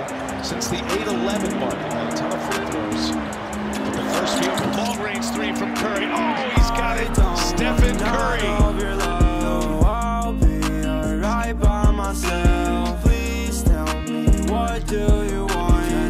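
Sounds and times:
hip-hop beat: 0.0 - 16.0
sneakers squeaking on court: 3.5 - 6.5.

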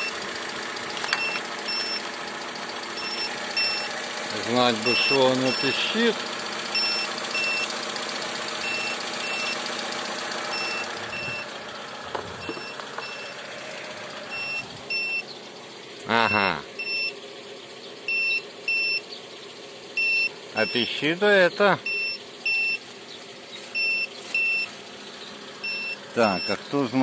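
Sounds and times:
car engine idling: 0.0 - 27.0
jump starter double beeps: 1.1 - 2.0, 3.0 - 3.9, 4.8 - 5.9, 6.8 - 7.7, 8.6 - 9.6, 10.5 - 11.5, 12.4 - 13.4, 14.3 - 15.3, 16.1 - 17.2, 18.1 - 19.1, 20.0 - 21.0, 21.8 - 22.8, 23.8 - 24.7, 25.6 - 26.6.

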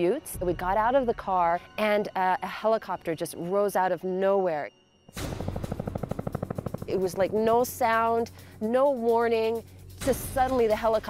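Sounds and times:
helicopter rotor chopping: 5.2 - 9.6.

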